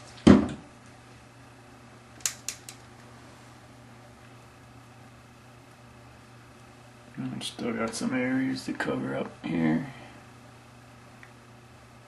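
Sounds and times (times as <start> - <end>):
thump on a counter: 0.2 - 0.6.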